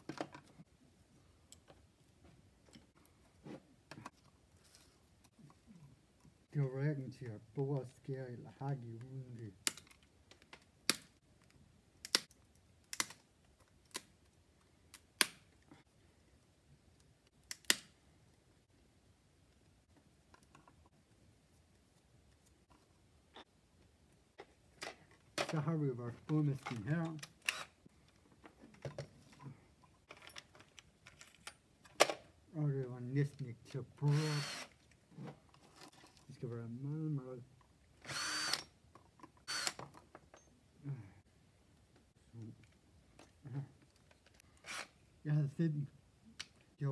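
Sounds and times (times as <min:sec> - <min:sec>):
cordless drill boring into wood: 0:34.1 - 0:34.7, 0:38.0 - 0:38.6, 0:39.5 - 0:39.8, 0:44.6 - 0:44.9.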